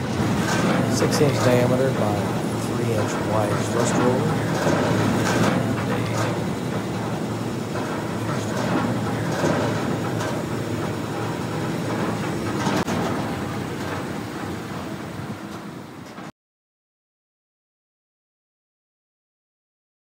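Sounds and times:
trommel screen mechanical rumble: 0.0 - 16.3.

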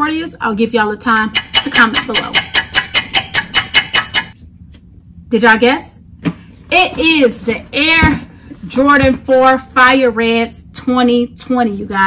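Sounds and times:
clock ticking rapidly: 1.2 - 4.4.

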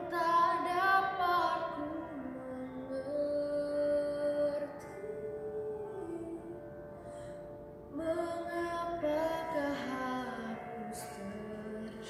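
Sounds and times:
woman singing: 0.0 - 6.6, 7.9 - 12.0.

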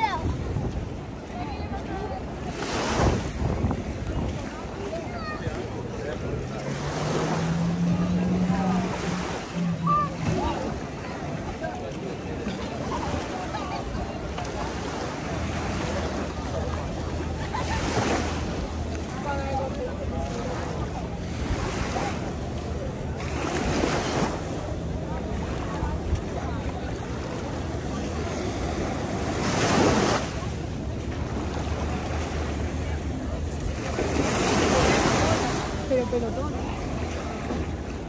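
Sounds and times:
wind buffeting microphone: 0.0 - 14.7
faint voices of people: 0.0 - 38.0
small waves breaking on shore: 0.0 - 38.0.

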